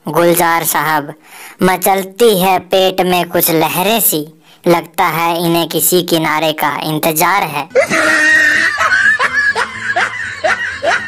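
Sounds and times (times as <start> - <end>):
person snickering: 7.7 - 11.0.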